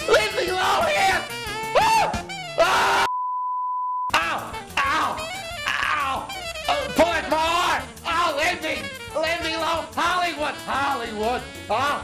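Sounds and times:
man talking: 0.0 - 1.3, 4.1 - 12.0
music: 0.0 - 3.1, 4.1 - 12.0.

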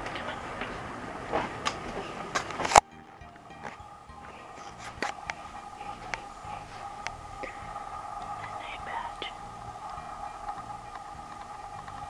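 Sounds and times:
two-tone hum: 0.0 - 12.0
person whispering: 8.3 - 9.6.

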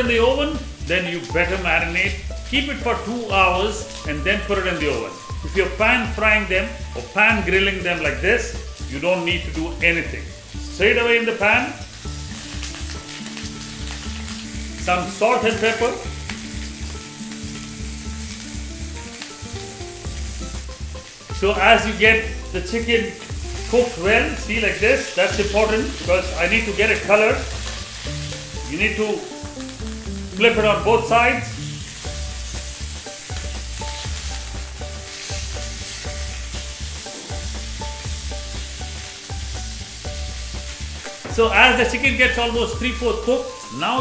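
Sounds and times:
background music with bass line: 0.0 - 44.0
chicken frying in oil: 0.0 - 44.0.

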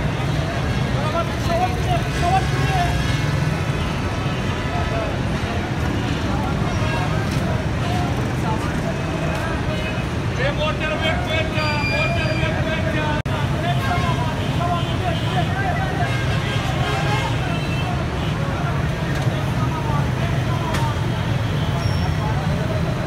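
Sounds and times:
street traffic rumble: 0.0 - 23.0
men talking: 0.4 - 3.5, 4.6 - 23.0.

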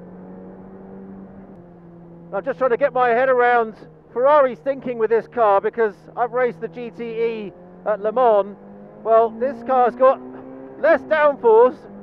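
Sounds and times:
racing car engine steady note: 0.0 - 12.0.

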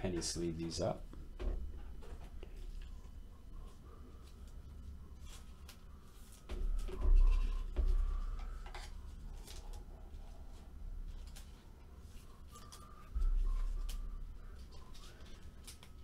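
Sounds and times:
plastic sleeves rustling: 1.6 - 16.0.

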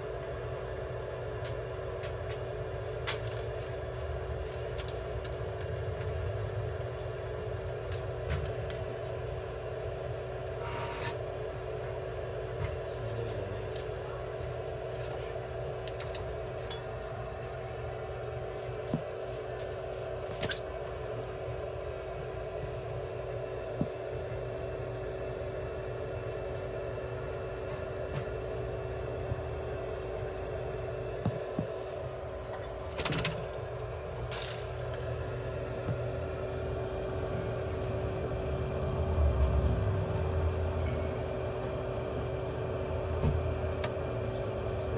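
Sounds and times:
steady machine hum: 0.0 - 44.9.

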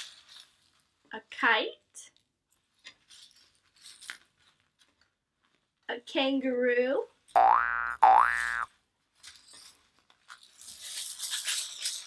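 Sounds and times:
cartoon boing sound effect: 7.4 - 8.7.

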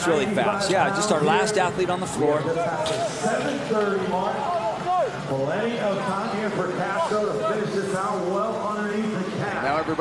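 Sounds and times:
commentator talking: 0.0 - 10.0.

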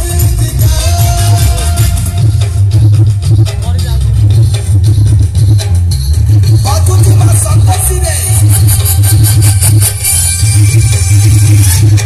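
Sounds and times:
dance song with heavy bass: 0.0 - 10.0.

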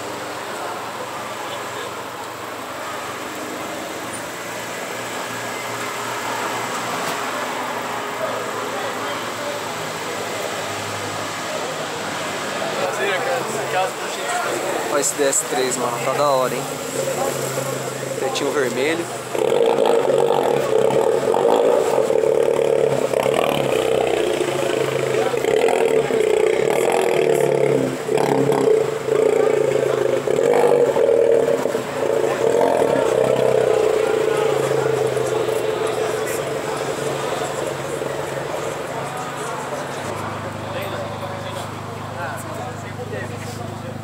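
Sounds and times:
people talking: 0.0 - 3.4, 5.1 - 44.0
car engine running: 12.6 - 44.0.

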